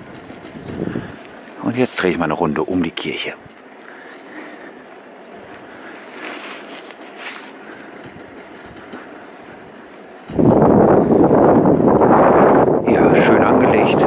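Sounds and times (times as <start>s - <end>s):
wind buffeting microphone: 0.0s - 3.7s, 7.6s - 14.0s
faint background noise: 0.0s - 14.0s.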